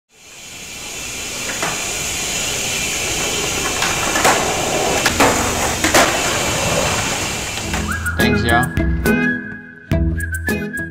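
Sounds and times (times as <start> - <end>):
skateboards rolling on concrete: 0.1 - 8.3
skateboard clacks: 0.2 - 8.1.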